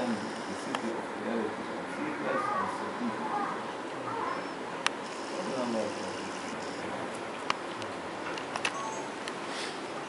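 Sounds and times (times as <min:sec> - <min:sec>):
voices murmuring: 0:00.0 - 0:08.0
background noise: 0:00.0 - 0:10.0.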